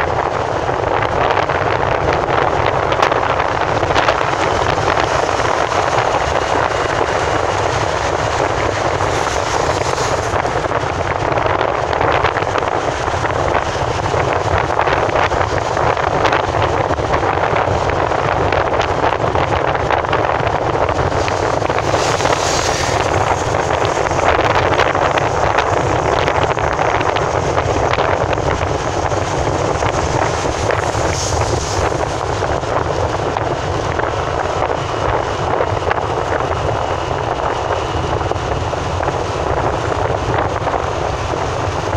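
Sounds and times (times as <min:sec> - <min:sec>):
road and wind noise in car: 0:00.0 - 0:41.9.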